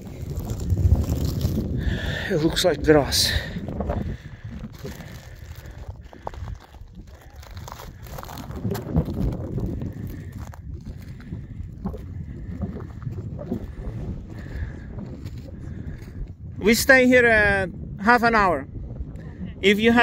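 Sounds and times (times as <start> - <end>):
wind rumbling on microphone: 0.0 - 20.0
footsteps crunching on rock: 3.6 - 13.9.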